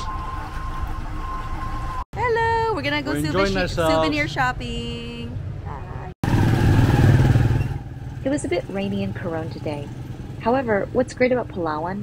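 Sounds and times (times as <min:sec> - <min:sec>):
small motorcycle engine passing: 0:06.2 - 0:11.0.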